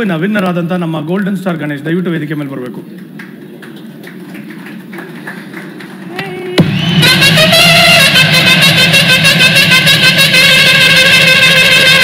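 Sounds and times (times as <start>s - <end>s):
loud music with fast beat: 6.4s - 12.0s.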